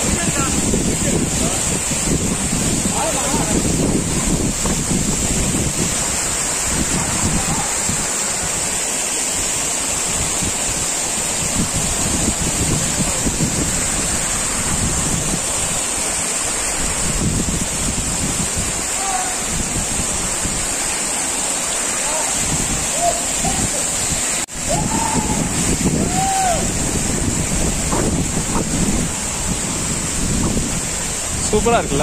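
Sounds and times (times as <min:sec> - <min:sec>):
water rushing over rocks: 0:00.0 - 0:32.0
wind rumbling on microphone: 0:00.0 - 0:32.0.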